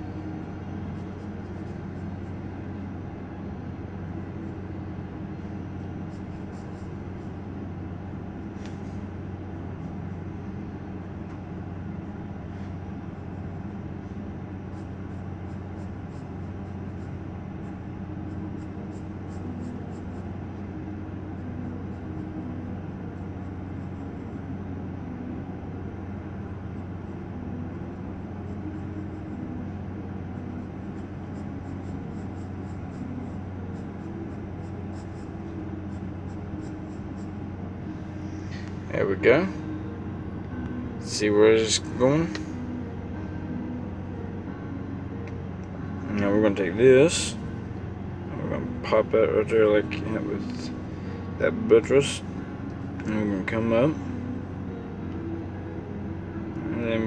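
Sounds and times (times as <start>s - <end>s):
low droning hum: 0.0s - 57.0s
pencil scratching on paper: 6.1s - 7.4s, 14.7s - 20.3s, 30.6s - 37.4s.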